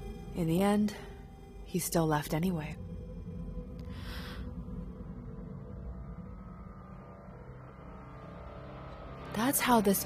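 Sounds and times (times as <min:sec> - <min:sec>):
low drone background score: 0:00.0 - 0:10.0.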